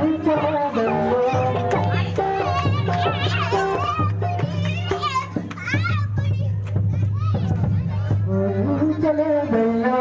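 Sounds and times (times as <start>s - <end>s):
man chanting over loudspeaker: 0.0s - 1.6s, 8.3s - 10.0s
other voices: 0.0s - 10.0s.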